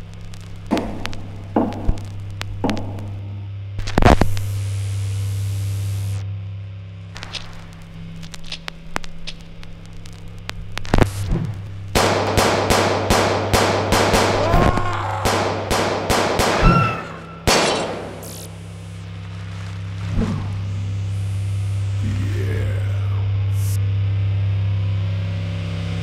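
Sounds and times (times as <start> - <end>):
steady low hum: 0.0 - 26.0
gunshot sound effects: 12.0 - 18.5.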